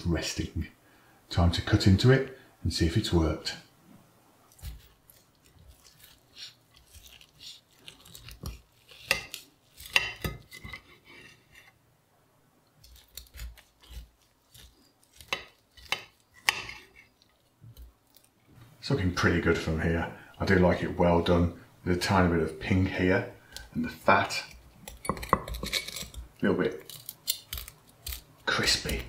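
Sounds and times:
knife cutting meat: 0:04.5 - 0:11.0, 0:12.8 - 0:17.1
cutlery scraping a plate: 0:13.4 - 0:17.1, 0:24.9 - 0:26.2.

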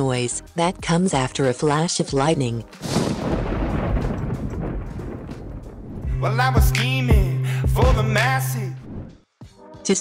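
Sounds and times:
thunder clap rumbling: 0:02.8 - 0:06.2.

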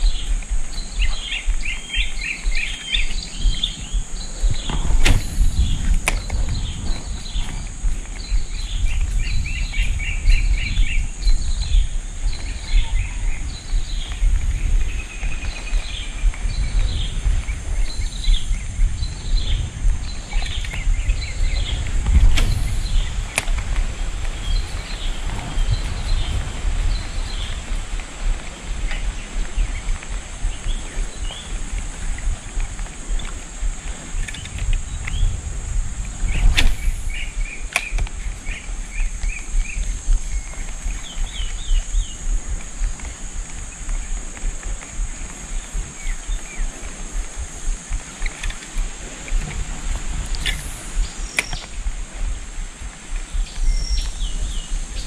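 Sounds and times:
bird chirping: 0:00.0 - 0:35.6, 0:36.2 - 0:47.1, 0:50.3 - 0:51.9, 0:53.3 - 0:55.0
steady high whine: 0:00.0 - 0:55.0
loud low rumble: 0:02.4 - 0:28.4
sharp click: 0:04.6 - 0:06.4, 0:36.4 - 0:38.1, 0:50.3 - 0:51.8.

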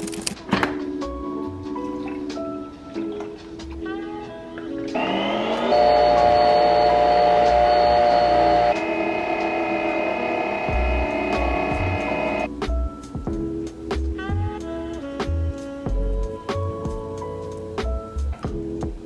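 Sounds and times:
background music: 0:00.0 - 0:19.0
milk frother motor whirring: 0:04.9 - 0:12.5.

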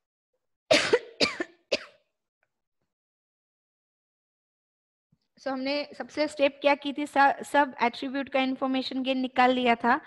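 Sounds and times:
woman coughing: 0:00.7 - 0:02.1.

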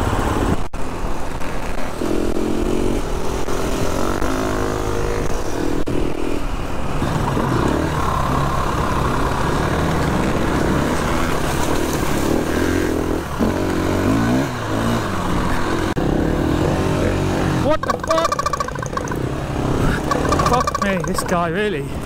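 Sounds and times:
dirt bike engine revving: 0:07.0 - 0:21.8.

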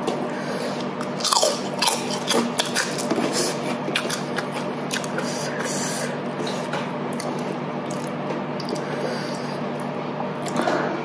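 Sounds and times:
low steady hum: 0:00.0 - 0:11.0
crunchy chewing: 0:00.7 - 0:10.7.

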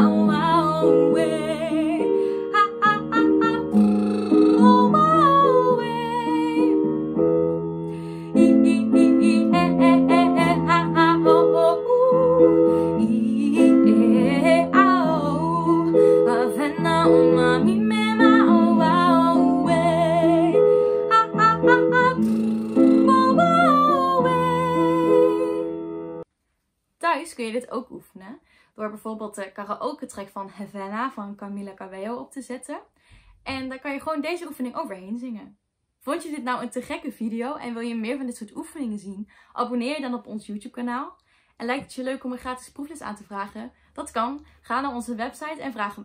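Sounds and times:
woman singing vocal exercise: 0:00.0 - 0:06.8, 0:08.2 - 0:25.7.

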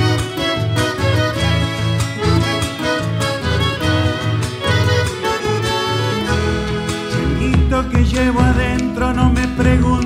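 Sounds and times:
folk band playing: 0:00.0 - 0:10.0
man singing: 0:07.1 - 0:10.0.

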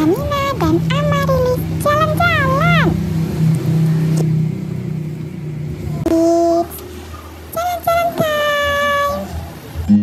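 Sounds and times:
car engine running: 0:00.0 - 0:09.9.

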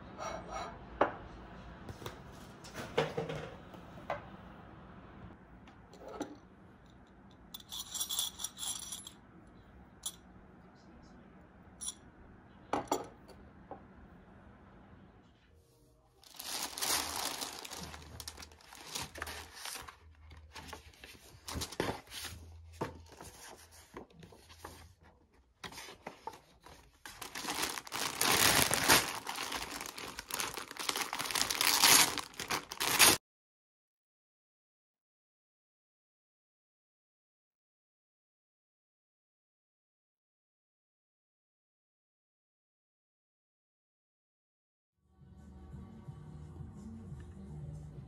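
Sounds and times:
metal rings clinking on ceramic plate: 0:07.6 - 0:09.2
paper and plastic packaging crinkling: 0:16.2 - 0:24.9, 0:25.6 - 0:33.2.

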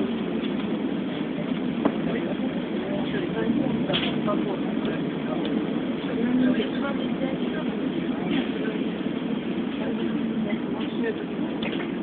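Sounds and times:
road and engine noise: 0:00.0 - 0:12.0.

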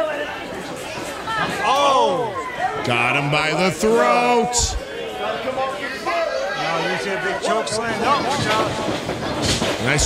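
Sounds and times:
crowd shouting and chattering: 0:00.0 - 0:10.0.

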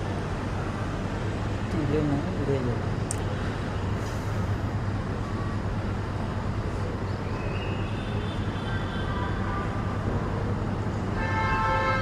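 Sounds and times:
constant hum: 0:00.0 - 0:12.0.

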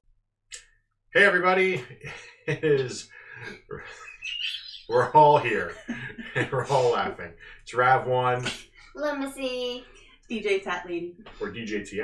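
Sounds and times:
people talking: 0:01.2 - 0:12.0
people laughing: 0:01.8 - 0:07.2.

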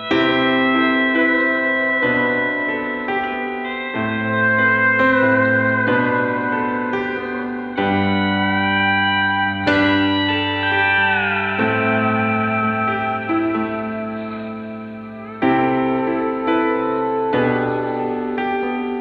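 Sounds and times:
gliding lead guitar line: 0:00.0 - 0:19.0
sustained guitar chords: 0:00.0 - 0:19.0.

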